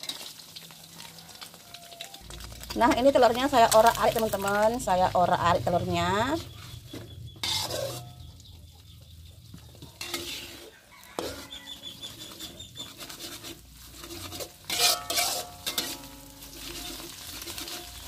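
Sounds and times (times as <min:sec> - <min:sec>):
light sizzle: 0:00.0 - 0:18.0
metal spatula scraping wok: 0:00.0 - 0:18.0.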